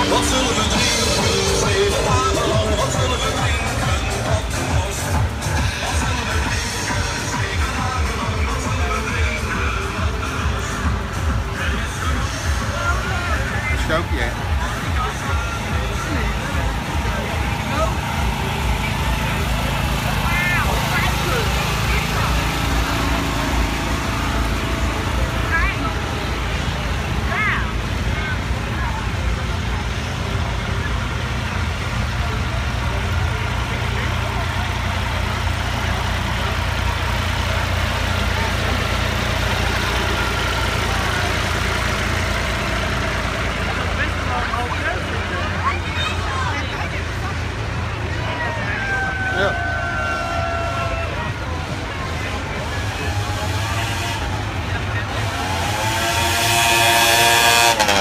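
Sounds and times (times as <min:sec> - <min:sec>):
tractor engines rumbling: 0:00.0 - 0:58.0
voices of onlookers: 0:00.0 - 0:58.0.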